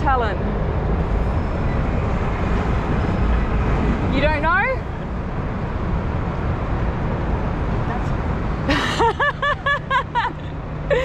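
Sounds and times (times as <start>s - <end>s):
city traffic rumble: 0.0s - 11.0s
man laughing: 8.7s - 11.0s.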